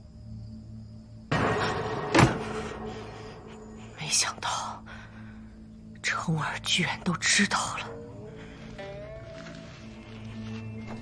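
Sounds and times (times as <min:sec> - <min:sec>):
low background music drone: 0:00.0 - 0:11.0.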